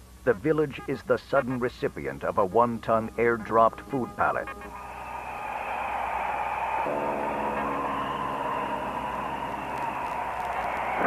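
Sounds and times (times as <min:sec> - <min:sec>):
aircraft engine drone: 0:06.9 - 0:10.2
low hum: 0:06.9 - 0:11.0.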